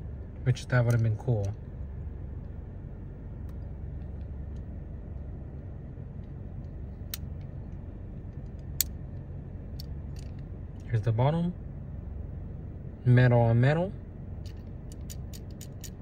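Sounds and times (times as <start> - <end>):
low hum inside car: 0.0 - 16.0
model car clicking: 14.4 - 16.0.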